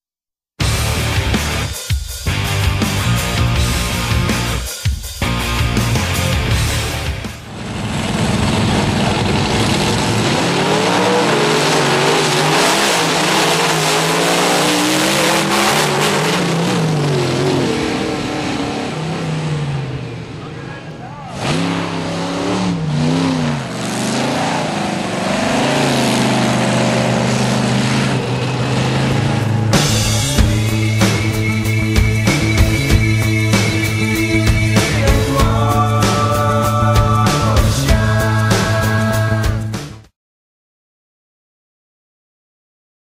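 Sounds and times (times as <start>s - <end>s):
monster truck engines revving: 0.6s - 4.6s, 5.2s - 40.0s.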